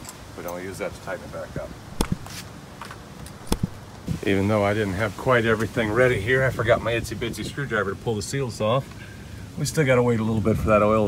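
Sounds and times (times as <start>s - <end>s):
light clicks and knocks: 2.0s - 4.0s.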